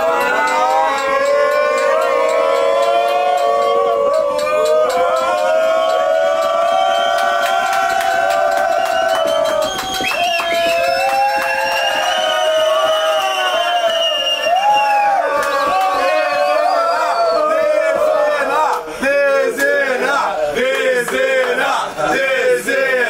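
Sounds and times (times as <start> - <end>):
sharp claps: 0.2 - 16.1
men chanting together: 16.9 - 23.0.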